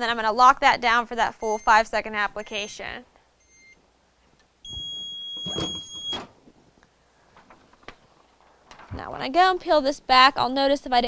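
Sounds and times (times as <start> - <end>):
heat press timer beep: 1.4 - 1.8, 4.7 - 6.3.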